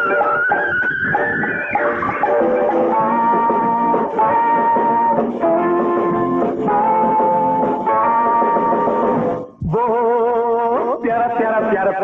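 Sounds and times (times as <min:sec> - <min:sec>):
high gliding melodic tone: 0:00.0 - 0:09.1
short repeated accompaniment notes: 0:00.0 - 0:09.6.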